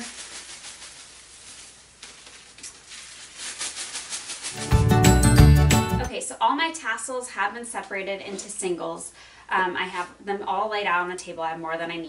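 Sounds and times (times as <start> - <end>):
paper tassels rustling: 0.0 - 4.7.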